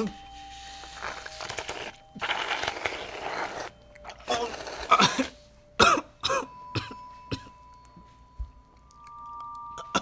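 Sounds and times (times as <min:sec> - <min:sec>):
man coughing and gasping: 0:04.9 - 0:07.5.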